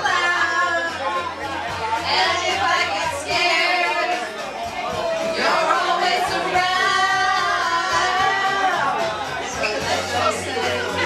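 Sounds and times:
backing track: 0:00.0 - 0:11.0
women singing karaoke: 0:00.0 - 0:11.0.

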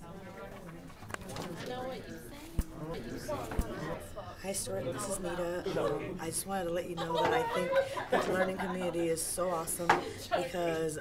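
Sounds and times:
indistinct voices talking quietly: 0:00.0 - 0:11.0.

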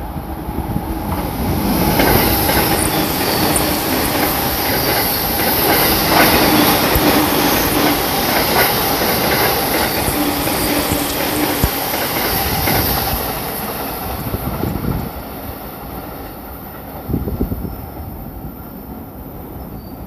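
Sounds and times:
electric train passing rumble: 0:00.0 - 0:20.0
wheels clicking over rail joints: 0:01.8 - 0:14.7.

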